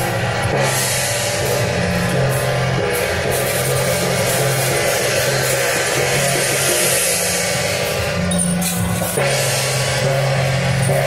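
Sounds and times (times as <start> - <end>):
cymbals crashing: 0.0 - 11.0
drum beating: 0.0 - 11.0
hand gong: 0.0 - 11.0.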